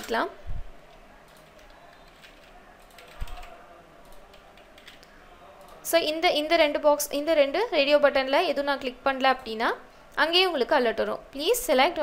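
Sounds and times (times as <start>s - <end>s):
keyboard typing: 0.8s - 5.8s.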